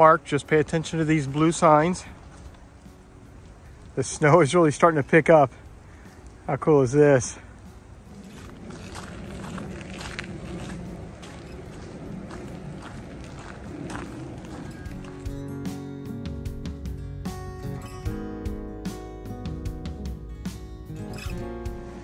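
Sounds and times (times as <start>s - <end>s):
footsteps on dirt trail: 0.0s - 6.5s, 7.2s - 16.9s
outdoor background noise: 0.0s - 22.0s
music with steady beat: 14.7s - 22.0s.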